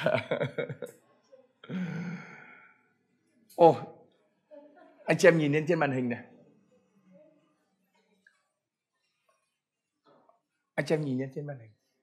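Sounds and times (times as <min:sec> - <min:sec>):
person sighing: 0:01.7 - 0:02.6.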